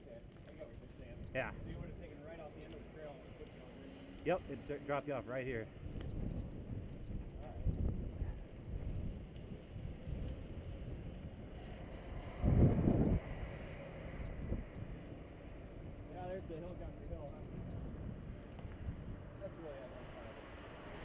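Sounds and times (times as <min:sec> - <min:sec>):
wind buffeting microphone: 0:05.5 - 0:19.8.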